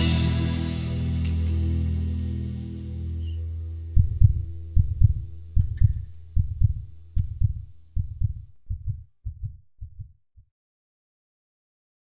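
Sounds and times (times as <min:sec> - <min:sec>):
closing music chord: 0:00.0 - 0:03.9
heartbeat thumps: 0:03.9 - 0:10.4.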